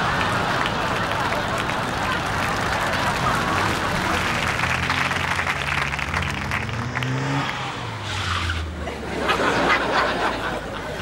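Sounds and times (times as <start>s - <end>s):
audience applause: 0.0s - 7.6s
car engine accelerating: 2.6s - 10.5s.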